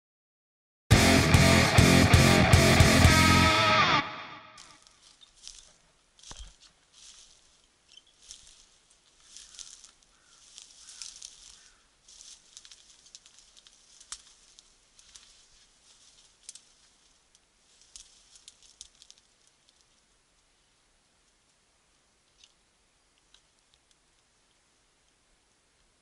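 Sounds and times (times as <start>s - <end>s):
distorted electric guitar rock music: 0.9s - 4.8s
rustling of dry brush: 4.6s - 20.8s.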